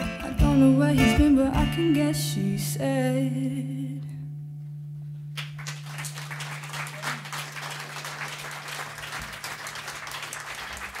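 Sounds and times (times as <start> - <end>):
audience applauding: 5.3 - 11.0.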